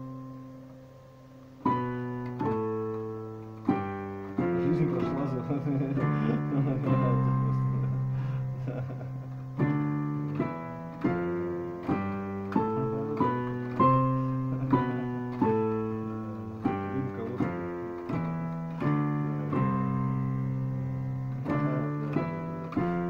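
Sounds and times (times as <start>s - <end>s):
piano chords: 0.0s - 23.0s.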